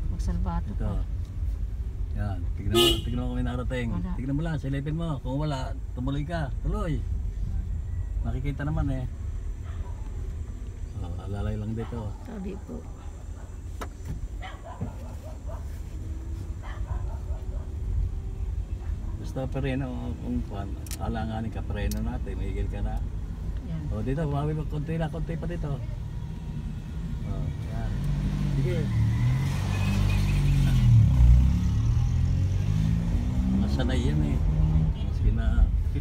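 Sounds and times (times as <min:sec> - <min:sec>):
car engine and road rumble: 0:00.0 - 0:36.0.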